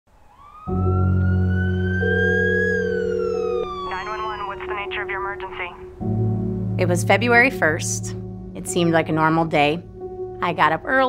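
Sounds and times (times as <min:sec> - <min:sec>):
siren-like wail: 0:00.2 - 0:04.6
low steady drone: 0:00.7 - 0:11.0.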